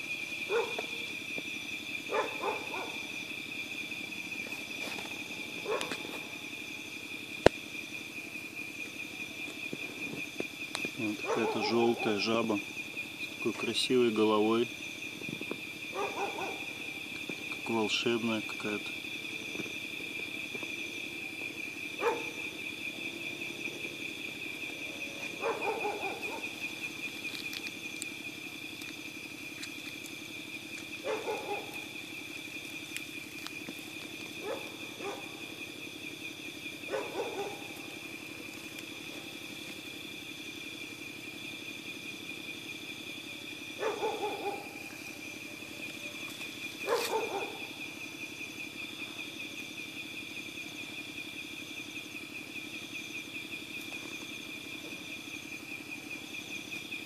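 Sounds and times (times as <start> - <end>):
crickets trilling: 0.0 - 57.0
low insect drone: 0.0 - 57.0.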